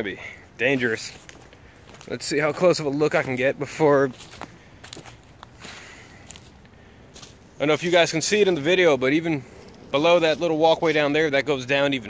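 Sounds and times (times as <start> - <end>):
footsteps on dry leaves: 0.1 - 11.7.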